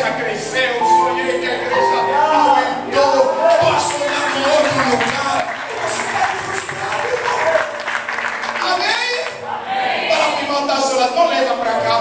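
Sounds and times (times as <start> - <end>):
congregation applauding: 3.4 - 9.6.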